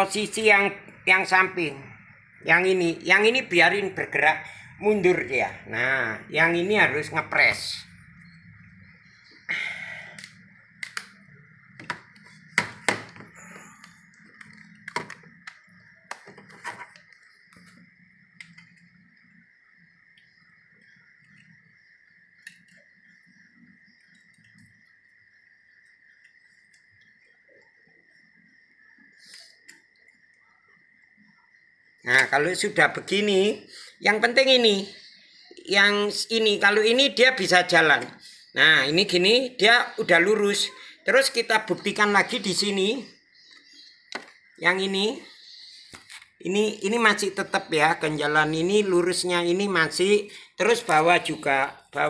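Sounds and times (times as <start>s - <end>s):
faint steady high tone: 13.1s - 52.0s.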